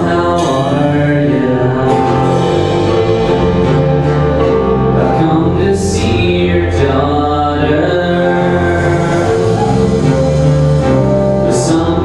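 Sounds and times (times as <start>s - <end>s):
guitars holding sustained chords: 0.0s - 12.0s.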